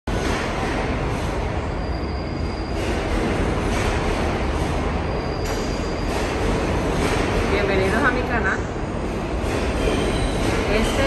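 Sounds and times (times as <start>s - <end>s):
subway train rumble: 0.1s - 11.0s
high wheel squeal: 1.4s - 3.7s, 4.9s - 6.4s, 9.6s - 11.0s.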